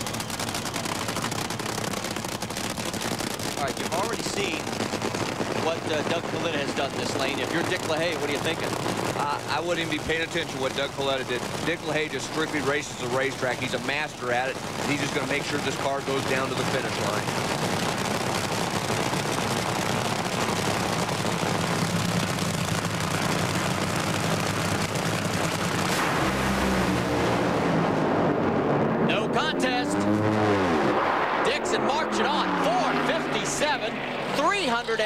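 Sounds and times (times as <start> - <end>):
dragster engines roaring: 0.0 - 35.0
sharp crack of launch: 25.1 - 34.4.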